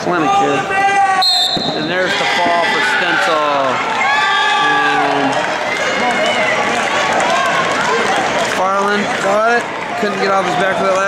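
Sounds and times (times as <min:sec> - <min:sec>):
crowd cheering and shouting: 0:00.0 - 0:11.0.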